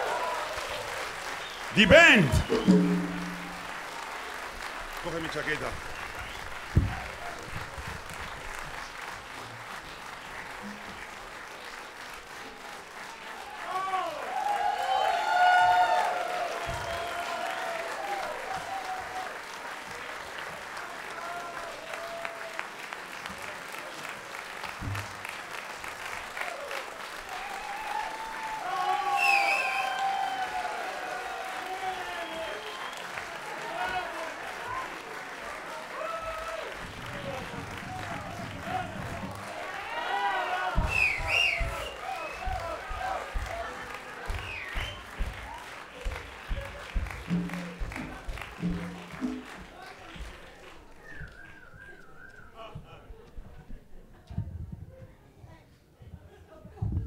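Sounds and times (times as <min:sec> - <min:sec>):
audience applauding: 0:00.0 - 0:52.6
people calling out: 0:01.8 - 0:03.5.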